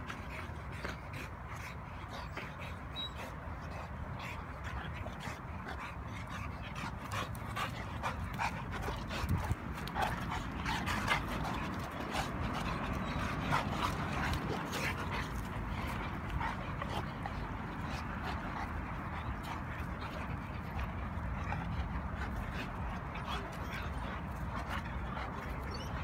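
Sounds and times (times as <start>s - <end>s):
dogs play-fighting noises: 0.0s - 26.0s.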